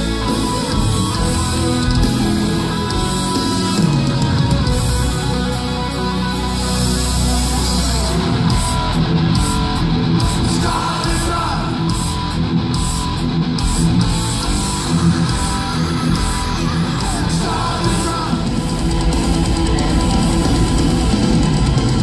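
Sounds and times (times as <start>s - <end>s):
bass guitar: 0.0s - 22.0s
distorted electric guitars: 0.0s - 22.0s
drums: 0.0s - 22.0s.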